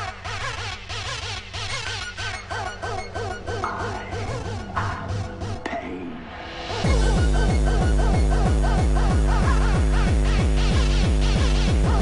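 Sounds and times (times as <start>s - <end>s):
electronic music with pulsing bass: 0.0s - 6.0s, 6.8s - 12.0s.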